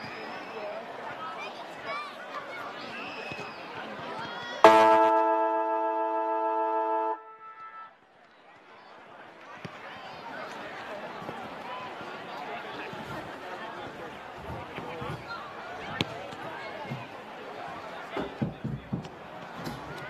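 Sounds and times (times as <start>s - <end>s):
faint crowd chatter: 0.0s - 20.0s
siren chord: 4.6s - 7.9s.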